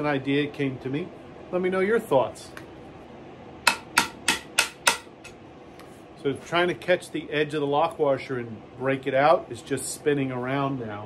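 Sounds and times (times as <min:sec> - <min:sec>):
hammer blows on steel: 0:03.7 - 0:05.3.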